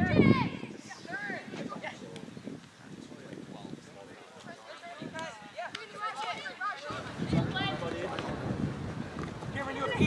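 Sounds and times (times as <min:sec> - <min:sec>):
voices shouting and calling out: 0:00.0 - 0:10.0.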